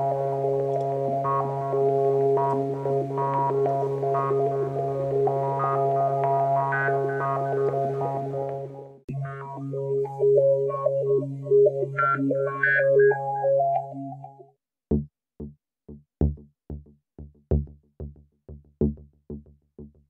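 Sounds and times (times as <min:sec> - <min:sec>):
synthesizer drone with shifting notes: 0:00.0 - 0:14.4.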